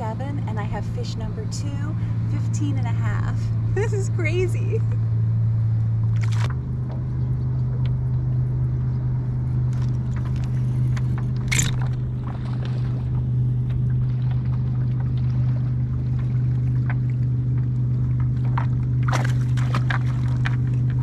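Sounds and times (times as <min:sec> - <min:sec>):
low drone: 0:00.0 - 0:21.0.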